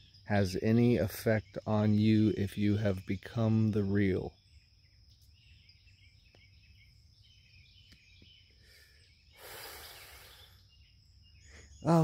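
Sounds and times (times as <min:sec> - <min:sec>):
faint bird chirps: 0:00.0 - 0:12.0
high insect drone: 0:08.4 - 0:12.0
man exhaling: 0:08.6 - 0:10.6.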